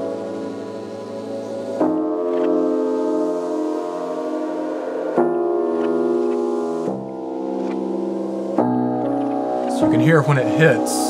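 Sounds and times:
synthesizer playing piano-like chords: 0.0 - 11.0.

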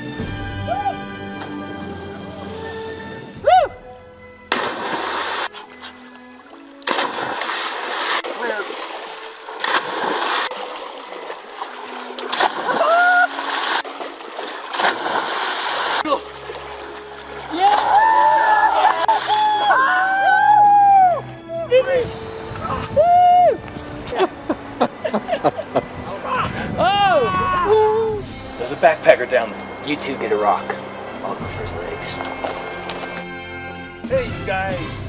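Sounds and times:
background music: 0.0 - 13.9, 14.9 - 35.0
people shouting and whooping: 0.6 - 1.1, 3.4 - 3.8, 12.7 - 13.4, 17.5 - 22.0, 22.6 - 23.6, 26.1 - 28.2
loud splashes into water: 4.5 - 5.5, 6.8 - 20.2.

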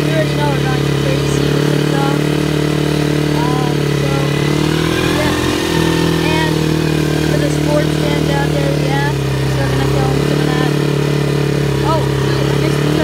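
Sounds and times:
quad engine running: 0.0 - 13.0.

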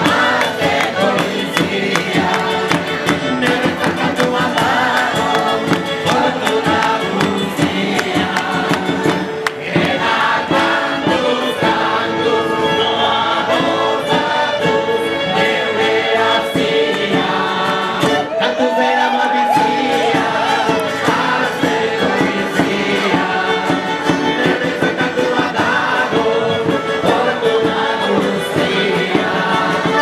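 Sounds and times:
crowd singing in chorus: 0.0 - 30.0.

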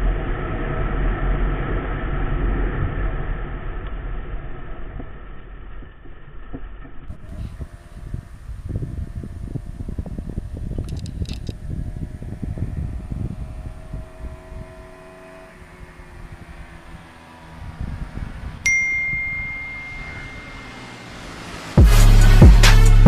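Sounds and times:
distant motorcycle engines: 0.0 - 23.0
wind on microphone: 7.1 - 20.6
bell-like ding: 18.7 - 21.4.

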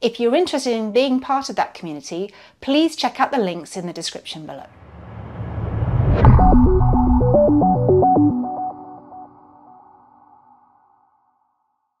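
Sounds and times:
short stepped musical notes: 6.1 - 9.2.

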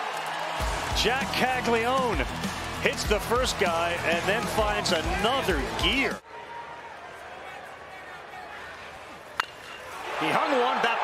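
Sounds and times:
stadium crowd noise: 0.0 - 11.0
metal bat hitting ball: 9.4 - 9.9.

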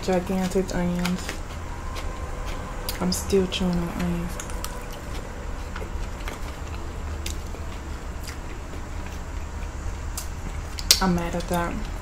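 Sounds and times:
chewing onion: 0.0 - 12.0
low background rumble: 0.0 - 12.0.

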